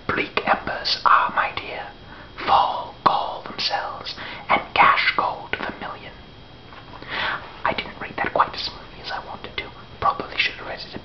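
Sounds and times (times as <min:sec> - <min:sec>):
man whispering: 0:00.1 - 0:06.2, 0:07.6 - 0:11.0.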